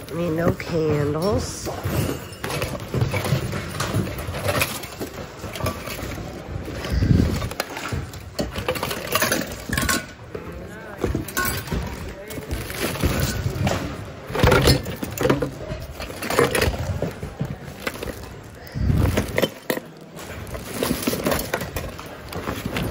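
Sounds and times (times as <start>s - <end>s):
hard items knocking and clinking: 0.0s - 22.9s
indistinct voices of shoppers: 0.0s - 22.9s
plastic bags rustling: 0.0s - 22.9s.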